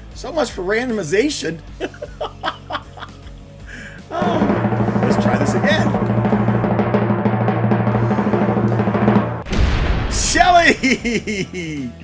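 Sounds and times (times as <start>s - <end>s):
drum roll with final hit: 4.2s - 10.6s.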